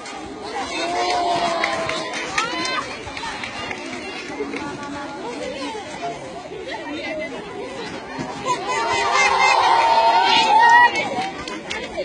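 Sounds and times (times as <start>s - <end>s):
people chattering and calling: 0.0s - 12.0s.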